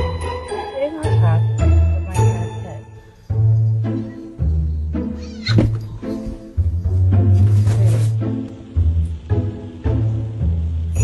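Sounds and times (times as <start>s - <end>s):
cat meowing: 5.1s - 5.7s.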